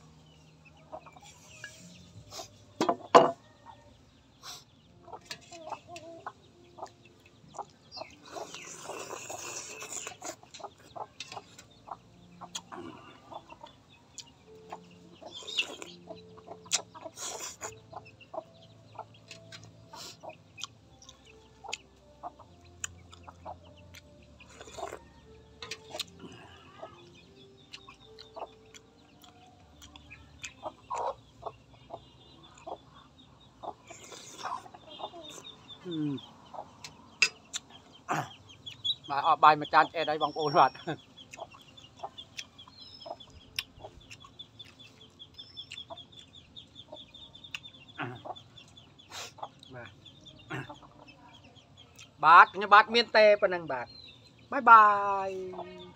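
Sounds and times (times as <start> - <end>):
chickens clucking: 0.0 - 55.9.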